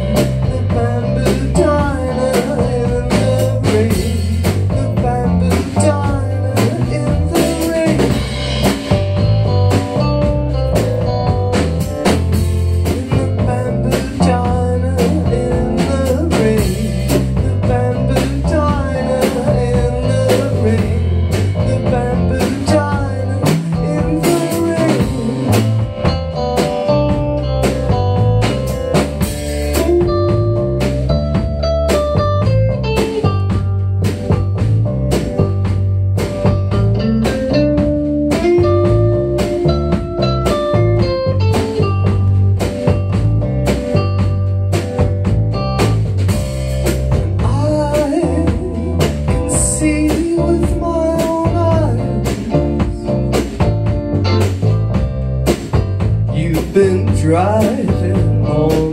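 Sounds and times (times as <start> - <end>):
bass guitar: 0.0 - 58.9
drum kit beat: 0.0 - 58.9
electric guitar: 0.0 - 58.9.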